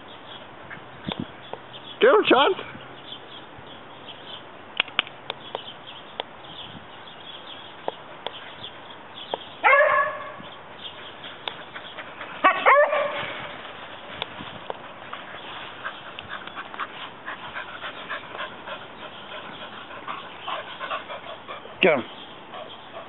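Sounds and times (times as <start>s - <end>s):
dog barking: 9.6s - 10.4s, 12.4s - 13.3s.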